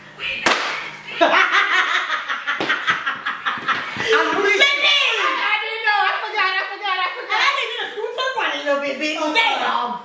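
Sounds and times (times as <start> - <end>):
women laughing loudly: 1.1 - 4.6
excited overlapping voices: 3.4 - 10.0.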